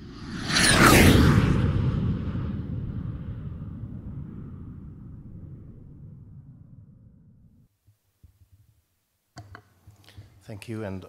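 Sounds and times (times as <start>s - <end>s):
whoosh and boom rumble: 0.0s - 7.6s.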